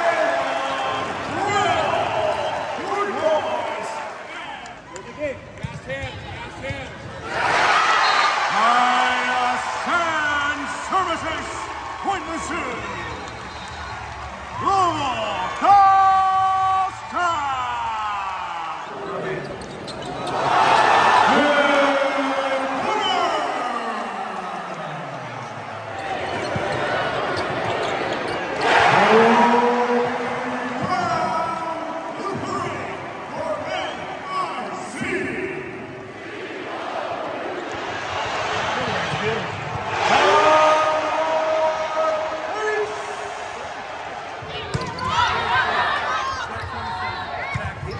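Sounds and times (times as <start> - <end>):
crowd noise: 0.0 - 47.9.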